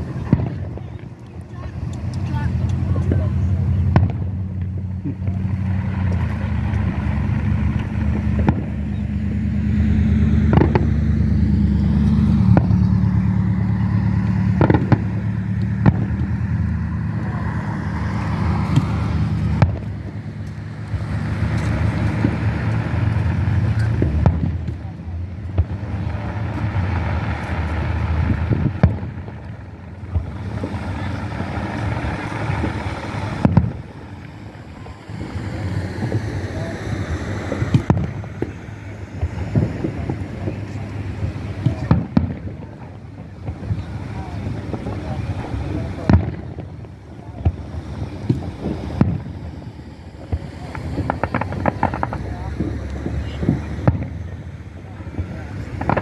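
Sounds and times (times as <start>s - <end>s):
faint voices: 0.0s - 56.0s
firework bangs: 0.0s - 56.0s
low drone: 0.0s - 56.0s.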